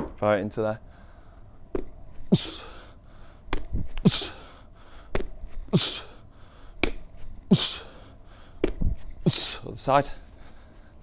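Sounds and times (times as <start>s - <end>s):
medicine ball slapping into hands: 1.7s - 2.0s, 3.5s - 4.0s, 5.1s - 5.6s, 6.8s - 7.3s, 8.6s - 9.1s.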